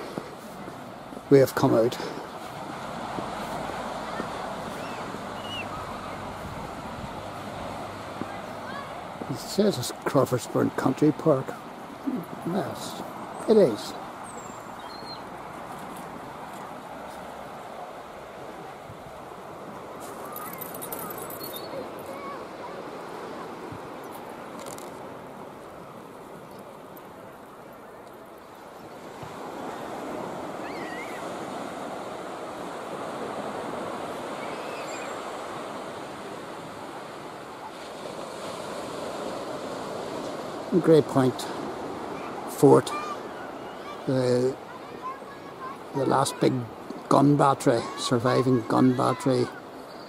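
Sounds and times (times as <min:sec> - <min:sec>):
waves washing onto sandy beach: 0:00.0 - 0:50.0.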